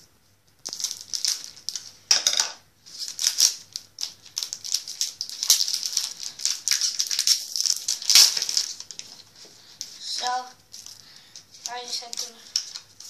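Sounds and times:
foil wrapper crinkling: 0:00.6 - 0:02.1, 0:02.8 - 0:13.0.

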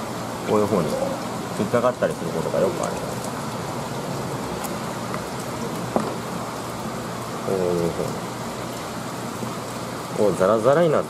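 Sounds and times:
rain-like hiss: 0:00.0 - 0:11.0.

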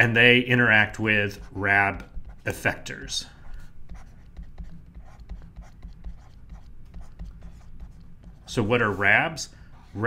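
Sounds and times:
stylus scratching and tapping on tablet: 0:01.1 - 0:10.0.

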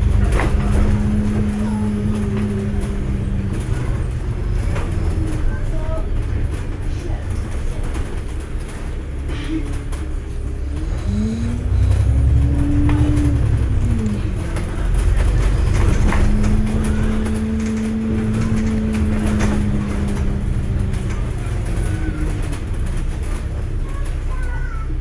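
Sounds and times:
bus engine rumble and whine: 0:00.0 - 0:25.0.

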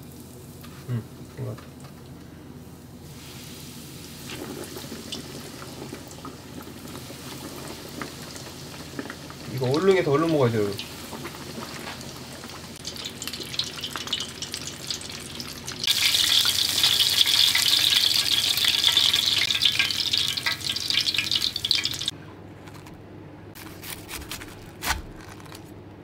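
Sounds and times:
food deep-frying in oil: 0:00.0 - 0:22.2.

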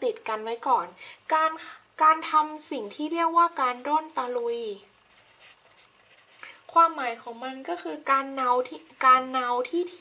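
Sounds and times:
marker scratching on paper: 0:02.6 - 0:06.6, 0:08.1 - 0:10.0.

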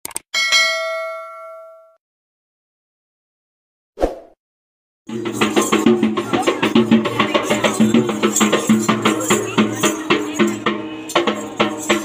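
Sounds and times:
notification bell ding: 0:00.4 - 0:02.0.

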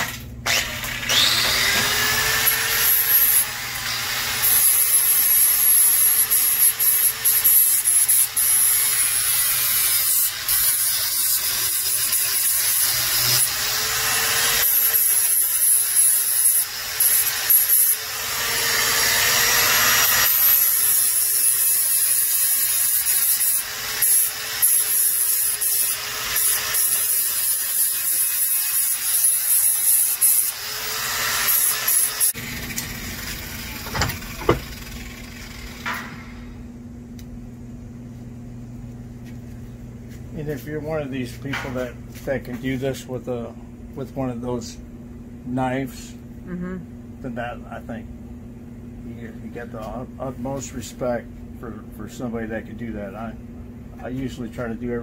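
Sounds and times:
angle grinder grinding wood: 0:00.0 - 0:36.4
low steady hum: 0:32.3 - 0:55.0.

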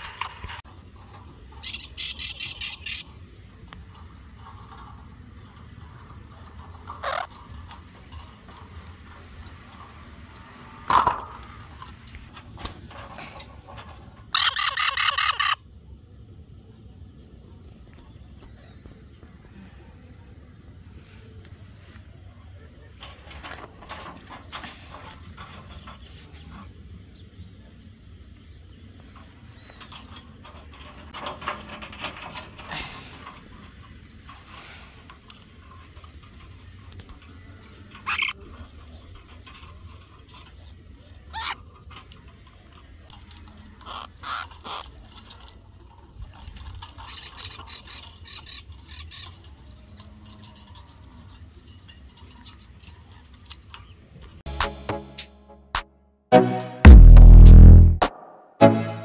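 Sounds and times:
birds rustling against wire mesh: 0:00.0 - 0:15.6, 0:20.4 - 0:27.2, 0:27.9 - 0:54.4
low outdoor rumble: 0:00.0 - 0:54.5.

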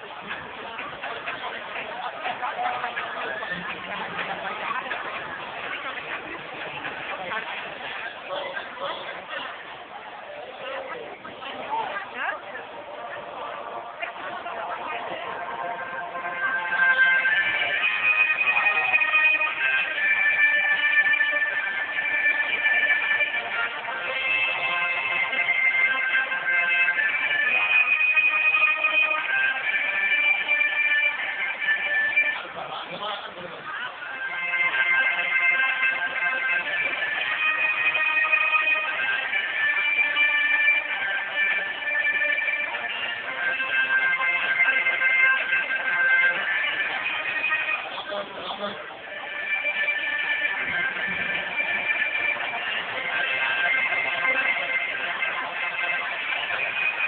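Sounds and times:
loud guitar-driven music: 0:35.5 - 0:57.0.

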